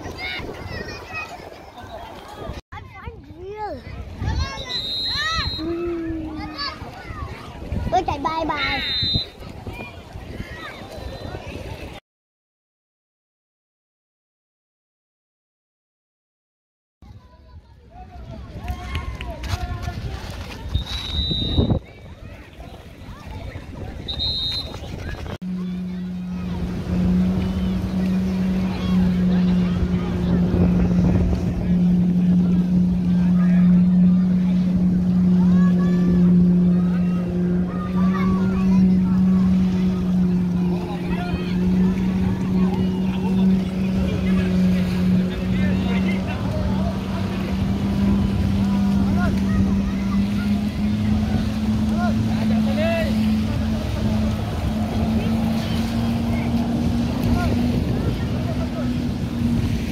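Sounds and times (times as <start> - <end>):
jet-ski engine drone: 0.0 - 12.0, 17.1 - 59.9.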